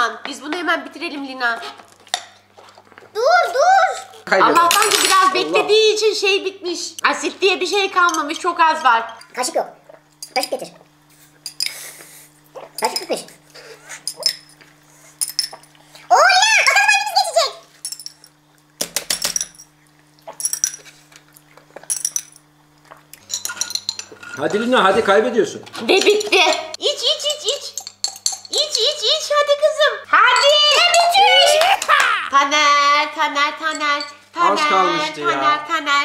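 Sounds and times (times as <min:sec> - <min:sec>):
metal spoon clinking against cup: 0:20.3 - 0:20.9, 0:23.2 - 0:24.4, 0:27.6 - 0:28.8
metal spoons scraping food cups: 0:23.2 - 0:24.8
excited wordless vocalising: 0:28.5 - 0:32.7.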